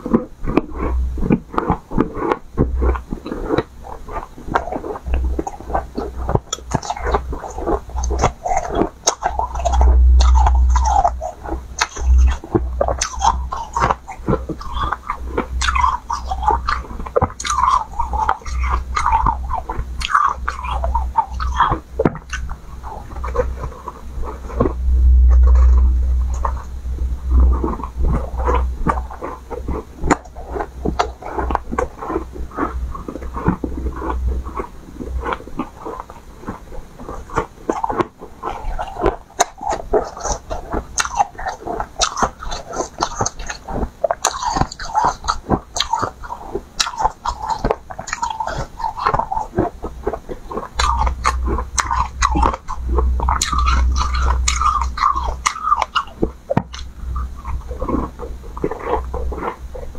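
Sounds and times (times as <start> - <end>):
chewing ice crunching: 0.0 - 59.9
low rumble: 9.3 - 14.8, 21.9 - 35.7.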